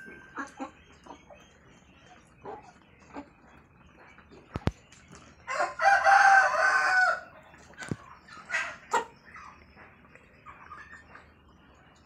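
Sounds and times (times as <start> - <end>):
chickens clucking: 0.0 - 12.0
rooster crowing: 5.5 - 7.3.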